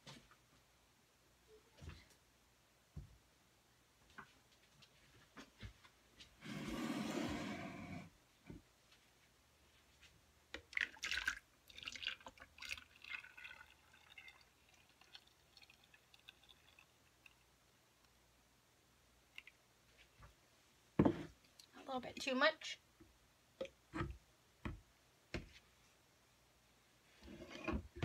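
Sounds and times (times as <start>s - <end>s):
soap batter pouring: 10.6s - 17.6s, 19.3s - 19.6s.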